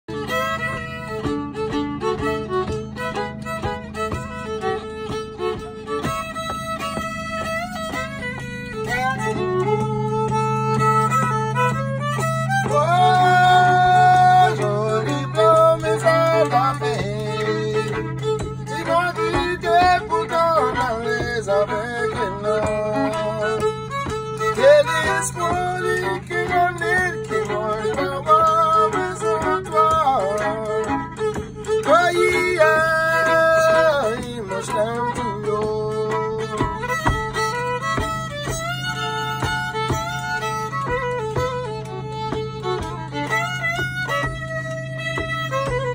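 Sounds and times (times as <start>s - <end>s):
fiddle melody with slides: 0.0s - 45.9s
steady low drone: 0.1s - 45.9s.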